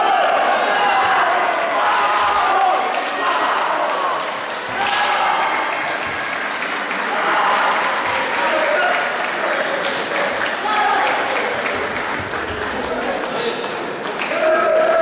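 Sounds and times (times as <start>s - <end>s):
people clapping: 0.5s - 15.0s.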